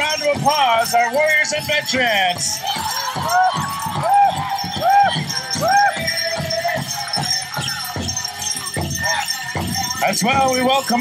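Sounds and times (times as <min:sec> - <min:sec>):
bells and jingles shaking: 0:00.0 - 0:11.0
loud steady drumbeat: 0:00.0 - 0:11.0.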